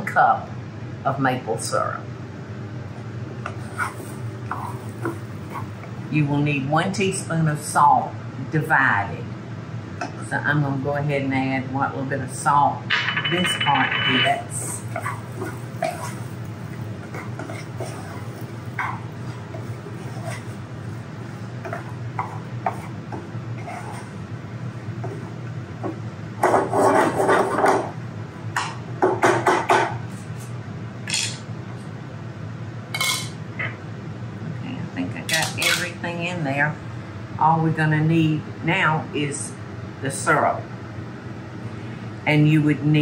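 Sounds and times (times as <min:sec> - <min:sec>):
wooden spoon scraping a saucepan: 0:03.5 - 0:05.8, 0:14.6 - 0:24.2, 0:26.4 - 0:27.9
nuts sizzling in butter: 0:14.6 - 0:21.0.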